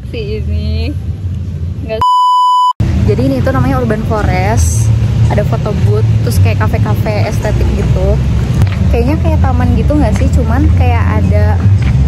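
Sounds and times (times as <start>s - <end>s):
high-pitched censor bleep: 2.0s - 2.8s.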